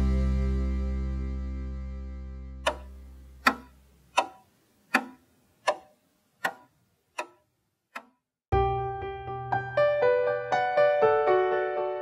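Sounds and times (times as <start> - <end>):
sharp ticks: 2.7 - 8.2.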